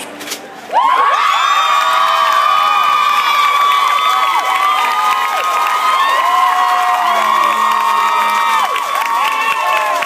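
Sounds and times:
crowd cheering and screaming: 0.7 - 10.0.

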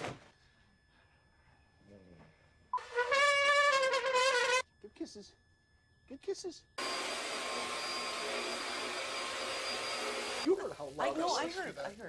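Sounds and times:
upright vacuum cleaner running: 6.8 - 10.5.

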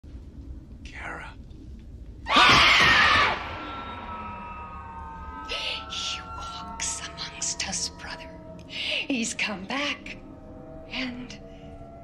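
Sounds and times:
loud shrill scream: 2.3 - 6.8
eerie high tone: 3.4 - 12.0.

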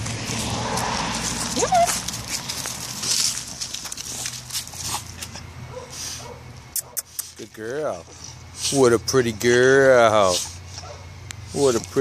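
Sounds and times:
dog scuffing through dry leaves: 0.0 - 5.2.

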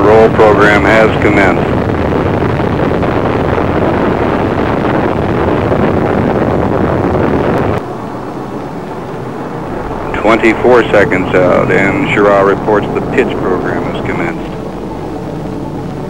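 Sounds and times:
rocket engines rushing and rumbling: 0.0 - 16.0.

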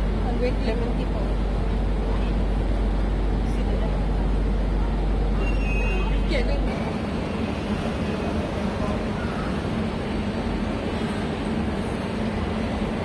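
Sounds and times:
train rumbling on elevated track: 0.0 - 13.0.

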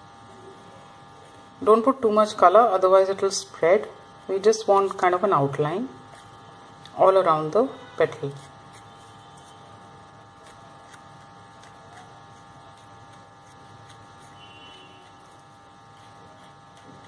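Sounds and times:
faint electrical buzz and hum: 0.0 - 17.0.

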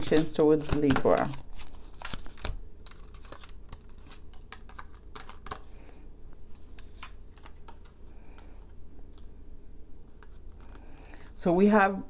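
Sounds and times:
cards being shuffled: 0.0 - 9.3, 10.1 - 11.4.

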